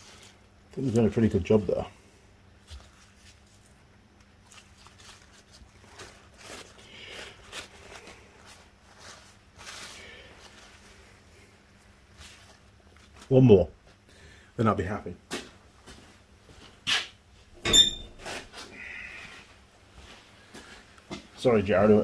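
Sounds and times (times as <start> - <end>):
paper towel crinkling and rustling: 2.5 - 14.1.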